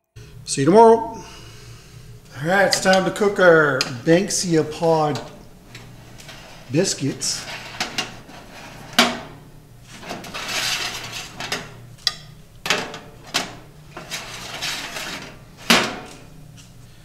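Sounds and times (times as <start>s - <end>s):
wire racks clinking and scraping: 5.0s - 16.7s.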